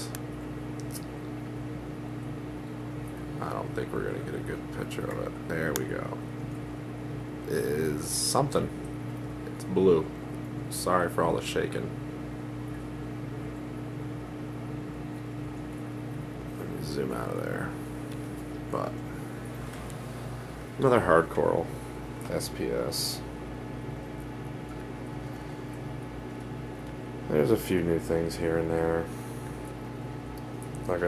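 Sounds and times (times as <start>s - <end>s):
aquarium pumps humming: 0.0s - 31.0s.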